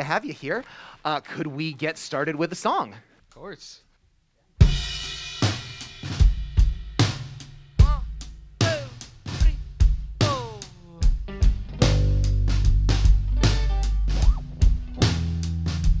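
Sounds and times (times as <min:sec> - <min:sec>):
rock band playing: 0:09.4 - 0:16.0
rock band accented hits: 0:11.2 - 0:16.0.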